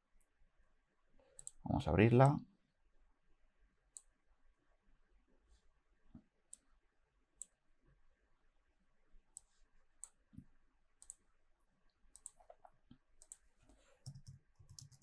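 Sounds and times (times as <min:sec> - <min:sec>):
computer mouse clicks: 0:01.4 - 0:01.6, 0:03.9 - 0:04.1, 0:09.4 - 0:10.2, 0:11.0 - 0:11.2, 0:12.1 - 0:15.0.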